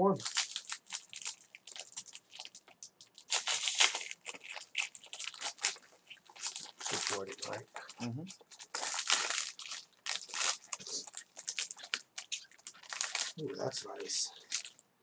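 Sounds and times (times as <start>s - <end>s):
foil wrapper tearing and crinkling: 0.2s - 14.8s.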